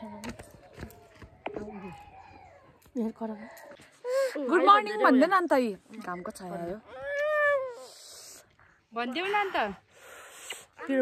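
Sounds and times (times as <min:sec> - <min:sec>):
small child whining cry: 0:01.6 - 0:02.8, 0:06.9 - 0:08.0.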